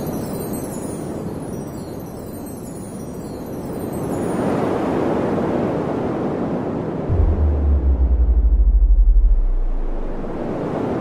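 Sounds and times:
rushing wind-like whoosh: 7.0s - 11.0s.

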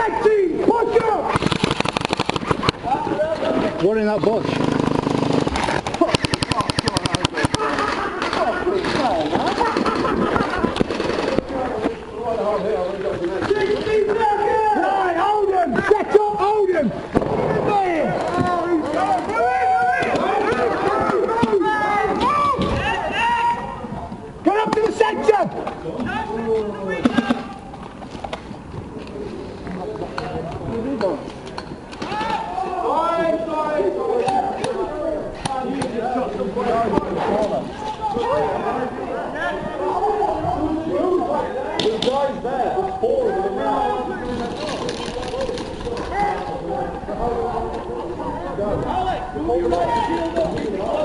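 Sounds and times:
shouted voices: 0.0s - 1.4s, 6.0s - 27.7s, 32.0s - 51.0s
people talking over one another: 0.0s - 51.0s
sharp clicks: 1.4s - 2.8s, 4.6s - 8.4s.

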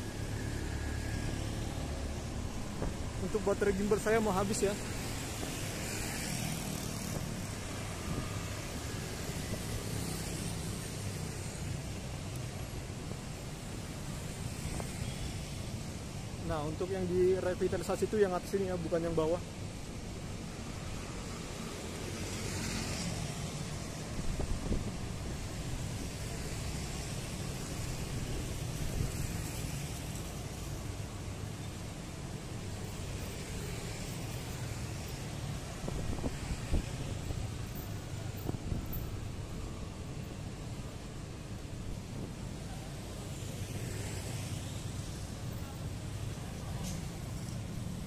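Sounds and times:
motorcycles and cars passing: 0.0s - 17.4s, 20.4s - 41.9s, 42.6s - 48.0s
wind rumble on microphone: 24.1s - 25.4s, 35.8s - 37.5s.

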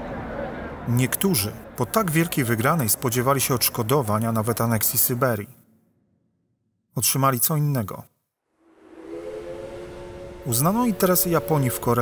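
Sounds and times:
steady held chord: 8.6s - 12.0s.

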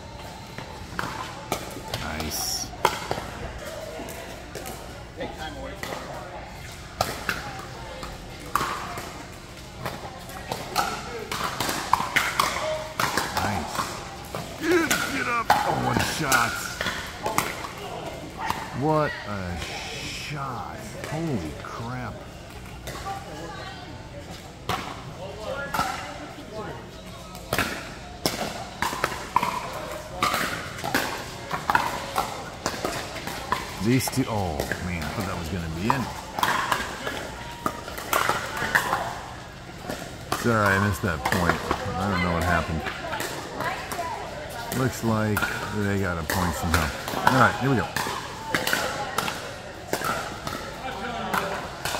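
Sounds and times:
voices talking: 0.0s - 28.0s, 31.7s - 51.9s.

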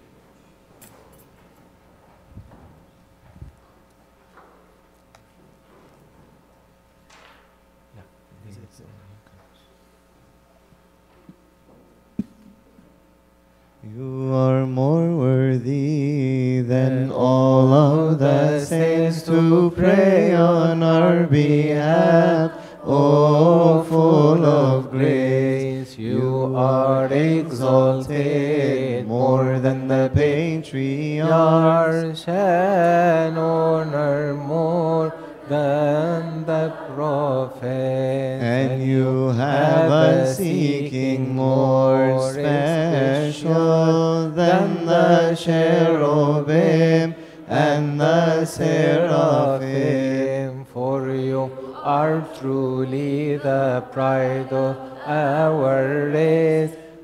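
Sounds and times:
chanting a hymn: 13.8s - 57.0s.

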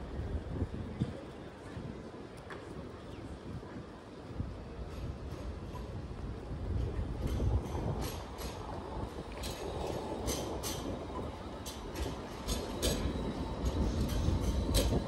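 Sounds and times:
tram rumbling past: 4.0s - 15.0s.

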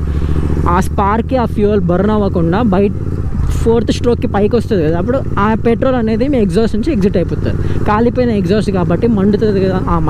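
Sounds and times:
motorcycle engine drone: 0.0s - 10.0s.

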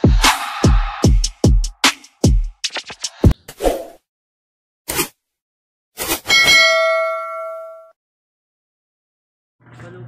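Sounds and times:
bell ding: 6.3s - 7.9s.

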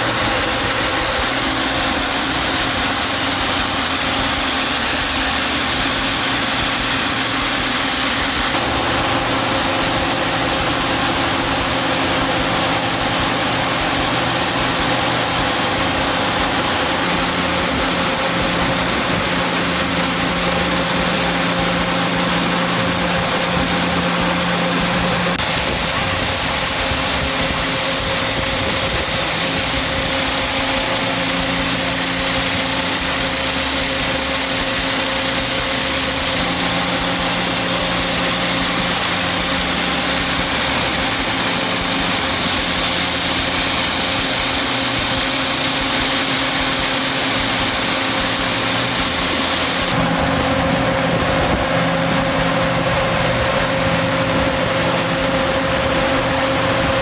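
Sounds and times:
truck engine and pump drone: 0.0s - 57.0s
water jets hissing: 0.0s - 57.0s.

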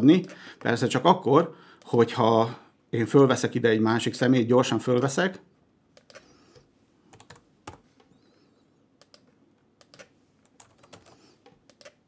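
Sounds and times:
faint keyboard typing: 6.0s - 8.3s, 9.0s - 12.0s.

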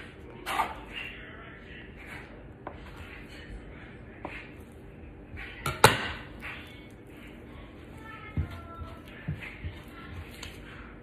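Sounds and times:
metal scraper knocking on countertop: 5.6s - 6.2s.

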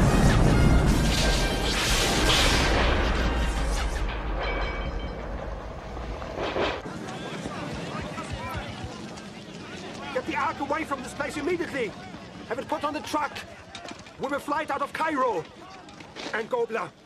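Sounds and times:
short blast or crash: 0.0s - 4.8s
deep rumbling explosion: 0.0s - 6.8s.

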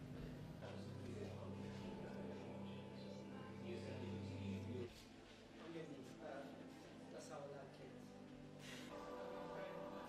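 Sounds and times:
quiet background music: 0.0s - 10.0s
faint indistinct speech: 0.2s - 10.0s.

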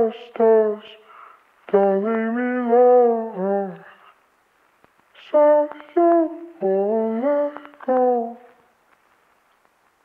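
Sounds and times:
person humming a slow melody: 5.2s - 8.5s.

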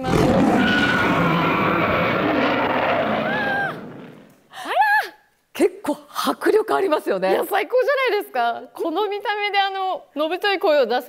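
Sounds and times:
monster roar over sound system: 0.0s - 4.3s
woman exclaiming: 3.3s - 3.8s, 4.6s - 5.2s.

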